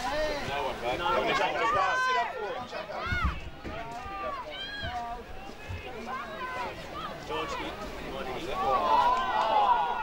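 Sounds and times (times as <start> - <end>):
voices shouting and calling: 0.0 - 10.0.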